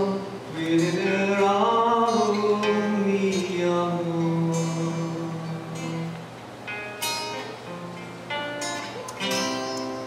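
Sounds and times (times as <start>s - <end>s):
man singing long notes: 0.0s - 6.2s
acoustic guitar: 0.0s - 10.0s.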